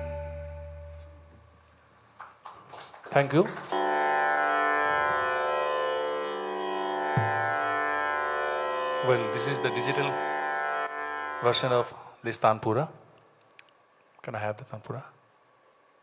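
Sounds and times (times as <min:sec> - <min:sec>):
electronic tanpura drone: 0:03.7 - 0:12.1
tabla bass drum ringing: 0:07.1 - 0:07.7.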